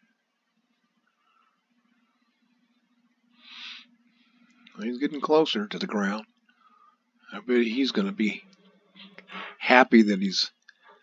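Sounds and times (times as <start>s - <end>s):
faint low hum: 0.0s - 11.0s
person drawing in breath: 3.4s - 3.9s, 9.3s - 9.6s.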